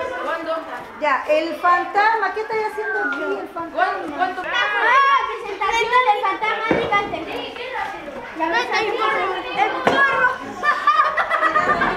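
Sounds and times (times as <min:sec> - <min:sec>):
children talking and calling: 0:00.0 - 0:11.9.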